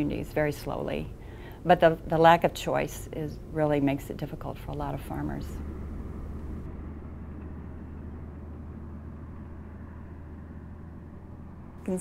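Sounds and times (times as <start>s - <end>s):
vehicle engine rumble: 3.0s - 12.0s.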